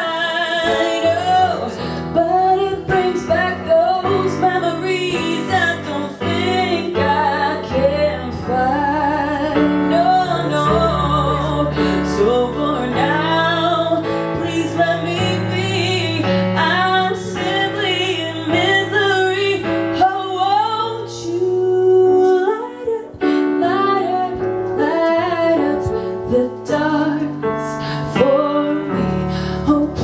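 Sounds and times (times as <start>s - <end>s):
electric keyboard chords: 0.0s - 30.0s
woman singing: 0.0s - 30.0s.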